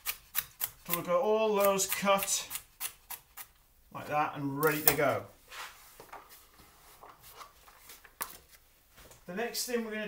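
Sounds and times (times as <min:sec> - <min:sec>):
hands sweeping celery on board: 0:05.5 - 0:06.5.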